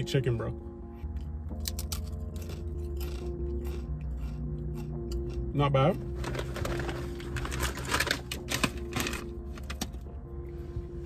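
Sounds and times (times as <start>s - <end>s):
person chewing crisp chips: 1.5s - 8.9s.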